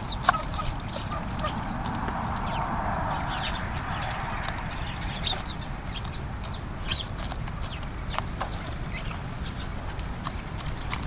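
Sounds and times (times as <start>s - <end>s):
birds pecking on wooden tray: 0.0s - 11.0s
small birds chirping: 0.0s - 11.0s
steady low rumble: 0.0s - 11.0s.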